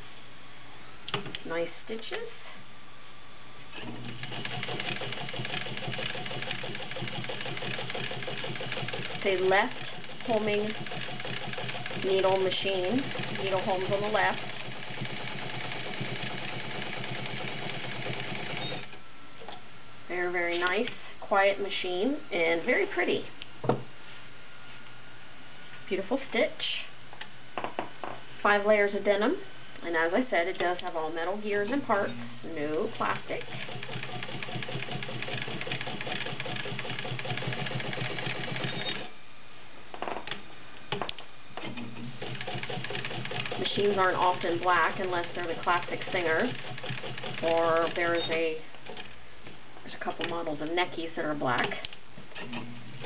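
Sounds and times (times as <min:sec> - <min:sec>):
sewing machine stitching: 0:03.9 - 0:19.0, 0:33.0 - 0:39.1, 0:41.7 - 0:49.2.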